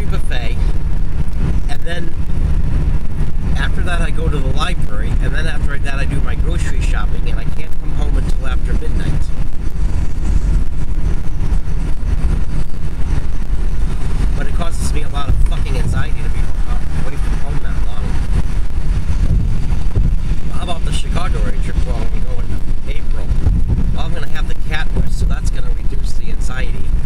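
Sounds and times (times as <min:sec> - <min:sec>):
road and engine rumble in car: 0:00.0 - 0:27.0.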